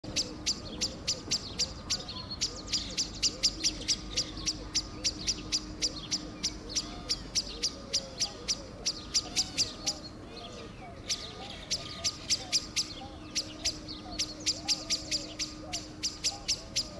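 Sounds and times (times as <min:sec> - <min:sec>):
blackbird alarm clicking calls: 0:11.0 - 0:16.9.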